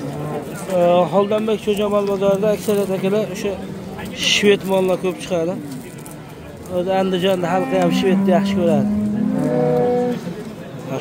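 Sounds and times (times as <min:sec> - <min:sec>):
cow mooing: 0:07.4 - 0:10.4.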